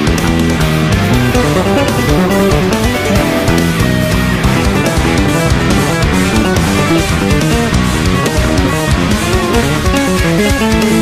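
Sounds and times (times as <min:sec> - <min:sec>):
progressive metal instrumental: 0:00.0 - 0:11.0.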